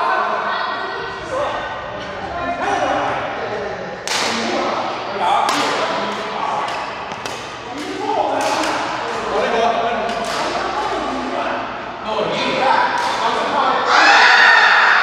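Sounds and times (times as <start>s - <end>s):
voices: 0.0s - 15.0s
rackets striking shuttlecock: 4.0s - 4.5s, 5.5s - 9.4s, 10.0s - 11.0s, 12.9s - 13.3s.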